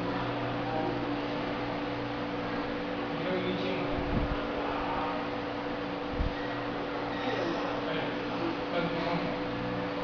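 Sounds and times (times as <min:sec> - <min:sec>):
electric fan humming: 0:00.0 - 0:10.0.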